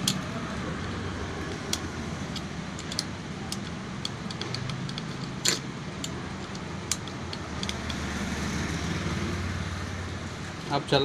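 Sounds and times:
spanner clicking on metal: 0.0s - 0.3s, 1.4s - 8.1s
low mechanical hum: 0.0s - 11.0s.

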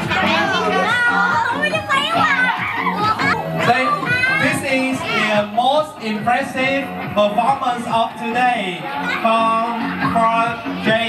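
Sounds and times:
children talking and calling out: 0.0s - 6.9s, 7.5s - 11.0s
music playing: 0.0s - 11.0s.

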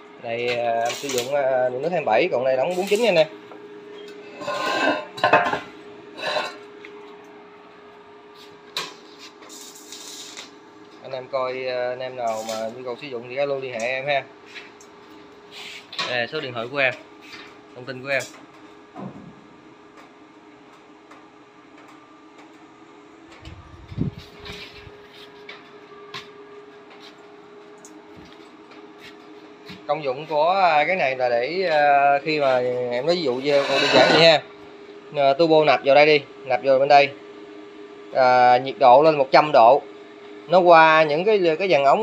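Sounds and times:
steady low hum: 0.0s - 42.0s
metal clattering and scraping: 4.3s - 6.6s, 33.3s - 34.4s.

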